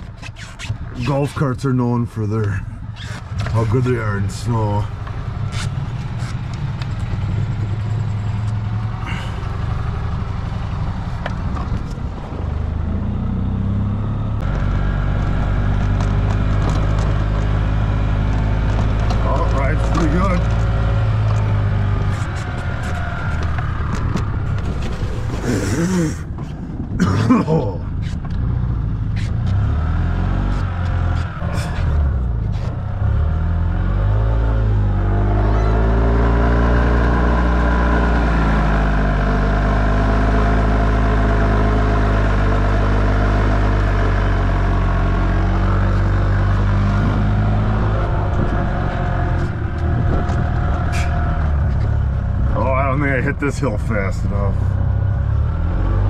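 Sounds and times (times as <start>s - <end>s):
golf cart motor rumbling: 1.8s - 56.0s.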